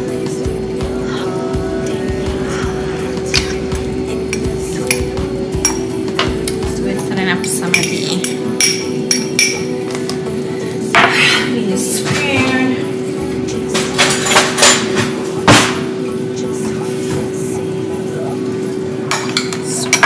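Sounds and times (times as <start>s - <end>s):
background music with held tone: 0.0s - 20.0s.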